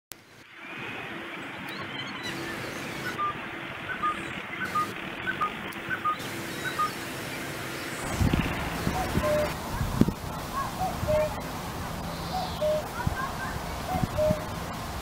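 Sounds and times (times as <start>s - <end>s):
steady background noise: 0.1s - 15.0s
bird two-note call: 13.9s - 14.4s.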